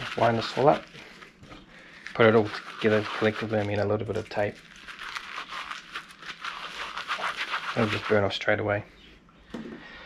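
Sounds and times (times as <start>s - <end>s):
wire rubbing scratchy rustle: 0.0s - 1.2s, 2.0s - 8.4s.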